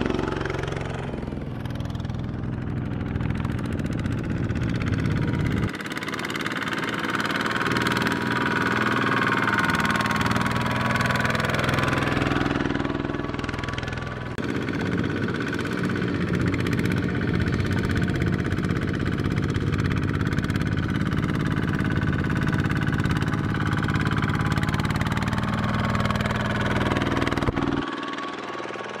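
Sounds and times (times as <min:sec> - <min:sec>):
diesel tractor engine under load: 0:00.0 - 0:29.0.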